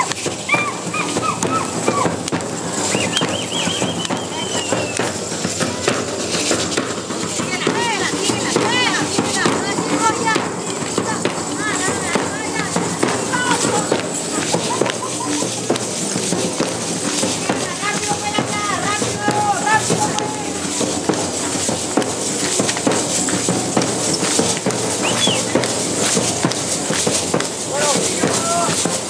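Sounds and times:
hand rattles and skirts clattering: 0.0s - 29.0s.

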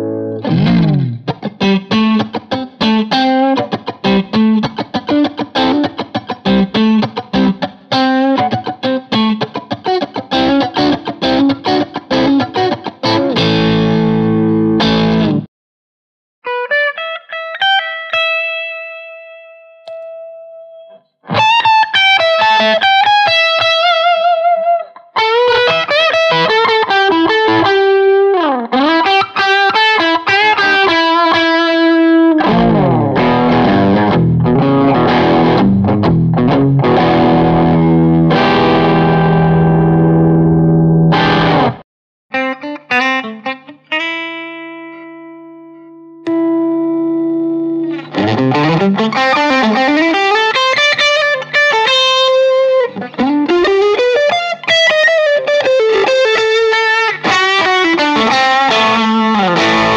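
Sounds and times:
overdriven electric guitar riffs: 0.0s - 15.5s, 16.4s - 59.9s.

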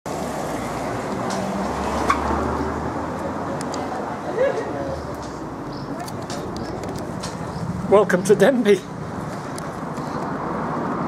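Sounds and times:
traffic noise: 0.1s - 11.0s.

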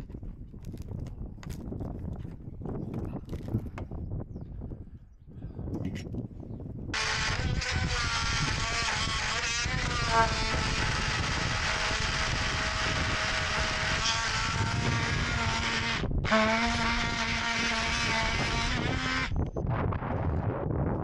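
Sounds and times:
power saw cutting wood: 7.0s - 19.3s.

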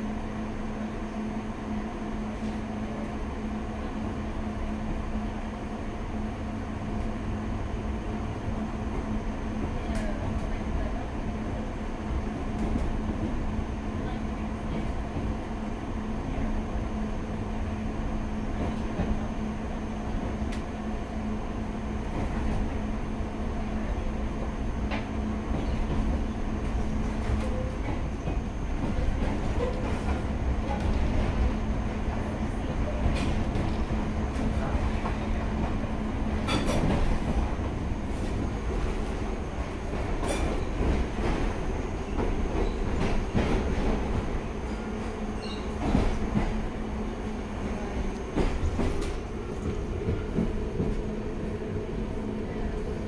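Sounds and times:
train wheels rumbling on rail: 0.0s - 53.0s.

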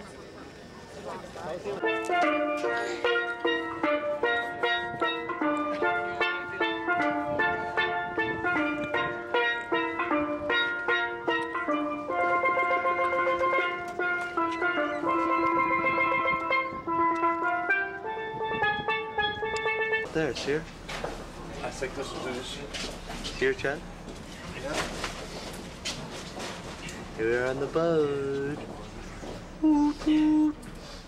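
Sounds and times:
steel pan melody: 1.8s - 24.0s.

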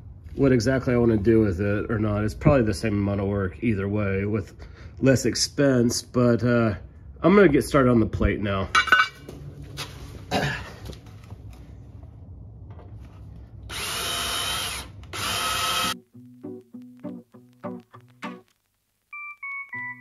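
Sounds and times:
cordless drill drilling into metal: 13.7s - 16.0s
plucked keyboard-like music: 16.0s - 20.0s.

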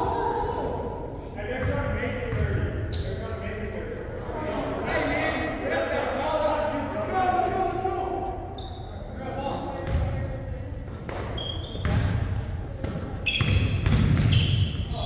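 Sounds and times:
basketball bouncing: 1.6s - 2.6s, 12.8s - 14.4s
sneakers squeaking on hardwood floor: 8.6s - 9.0s, 9.8s - 15.0s.

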